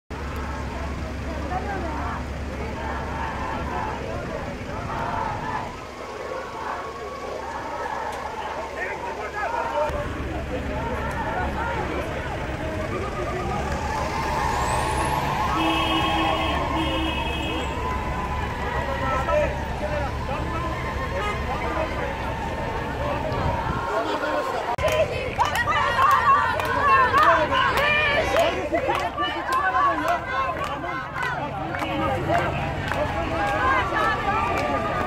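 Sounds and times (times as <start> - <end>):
crowd talking and calling out: 0.1 - 35.0.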